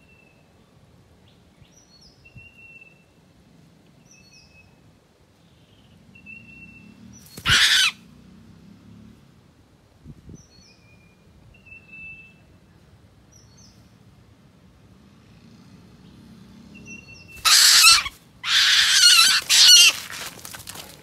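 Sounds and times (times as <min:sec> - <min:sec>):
bird harsh screeching calls: 0:07.3 - 0:08.0, 0:17.4 - 0:20.1.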